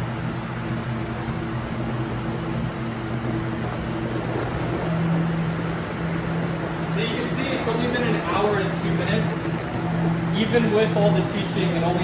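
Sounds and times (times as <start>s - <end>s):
machine hum: 0.0s - 12.0s
rushing air noise: 0.0s - 12.0s.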